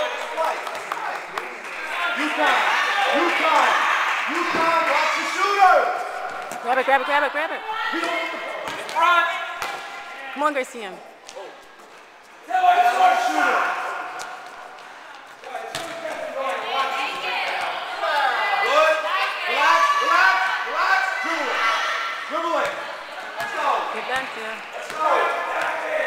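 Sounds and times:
people shouting and calling: 0:01.8 - 0:10.4, 0:12.4 - 0:14.2, 0:16.2 - 0:26.0.

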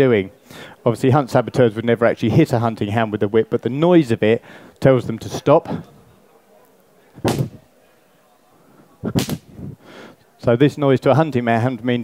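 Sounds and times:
whip cracking: 0:07.2 - 0:07.6, 0:09.1 - 0:09.5.

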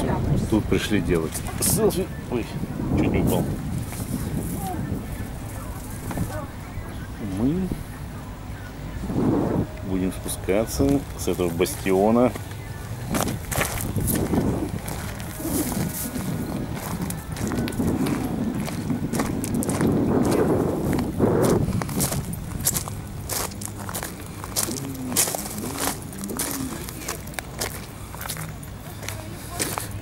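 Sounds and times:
footsteps on gravel: 0:03.4 - 0:06.4, 0:10.8 - 0:30.0.

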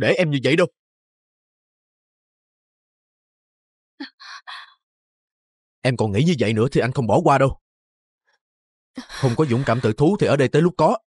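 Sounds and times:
person gasping: 0:09.0 - 0:09.9.

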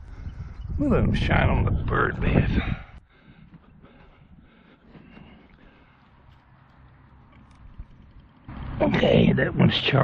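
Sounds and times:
wind rumble on microphone: 0:00.0 - 0:05.4, 0:07.4 - 0:10.0.

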